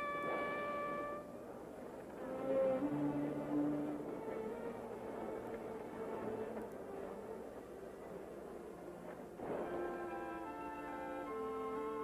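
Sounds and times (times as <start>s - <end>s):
horn long held note: 0.0s - 1.4s.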